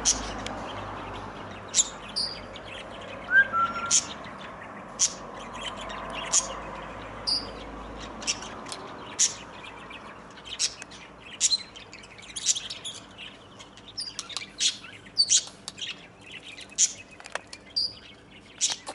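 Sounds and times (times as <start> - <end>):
birds chirping: 0.0 - 18.9.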